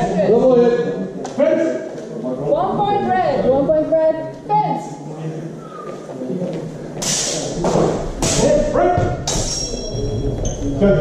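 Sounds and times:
steel swords striking: 9.3 - 10.0.

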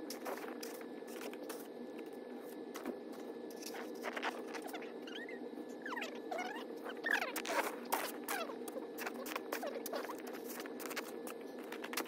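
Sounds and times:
steady low hum: 0.0 - 12.0
high squeaky chirps: 4.7 - 10.2.

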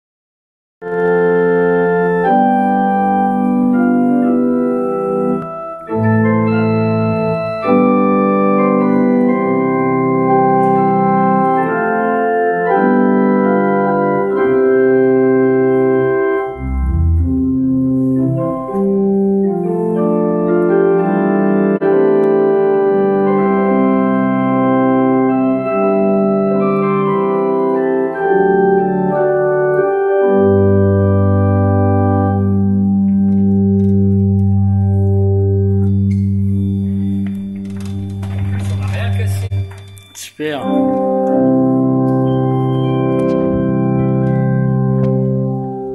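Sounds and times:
electronic organ playing chords: 0.8 - 45.9
deep bass organ note: 16.4 - 19.2.

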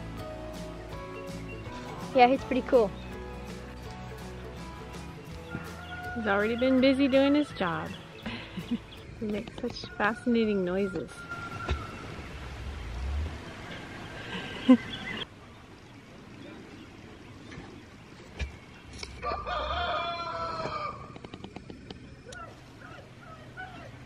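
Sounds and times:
turkey calling: 9.8 - 12.1, 22.2 - 24.0.

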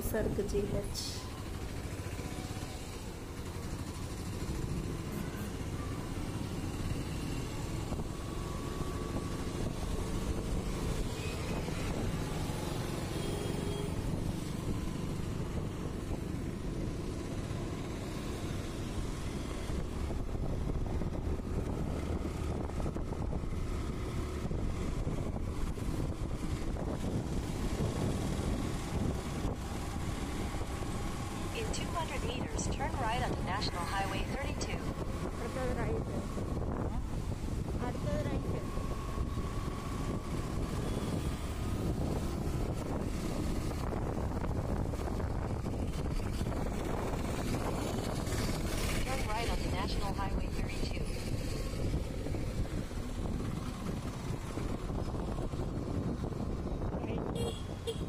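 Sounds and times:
motorbike engine: 0.0 - 58.0
wind rumble: 13.7 - 58.0.

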